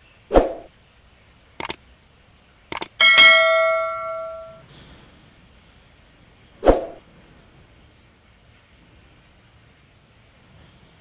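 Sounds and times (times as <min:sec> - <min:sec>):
double mouse clicks: 0:02.7 - 0:03.0
bell ding: 0:02.8 - 0:04.6.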